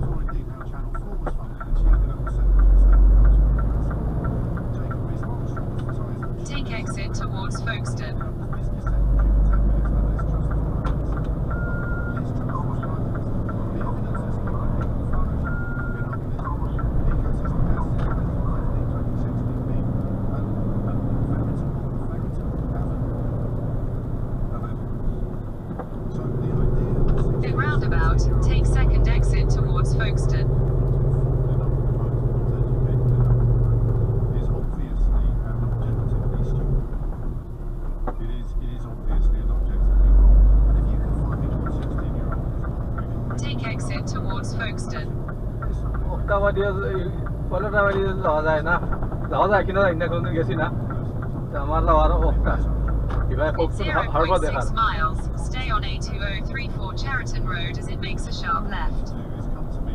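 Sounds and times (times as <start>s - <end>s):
diesel truck engine running: 0.0s - 59.9s
road rumble: 0.0s - 59.9s
short beeps: 11.5s - 12.3s, 15.2s - 16.2s.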